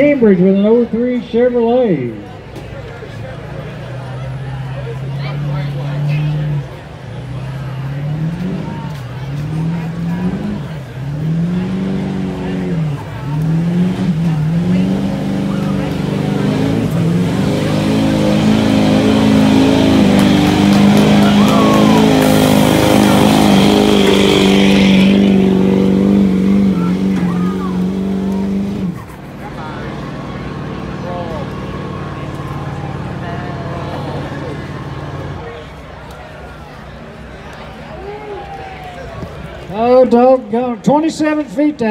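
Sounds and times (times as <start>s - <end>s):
diesel truck engine revving: 0.0s - 37.9s.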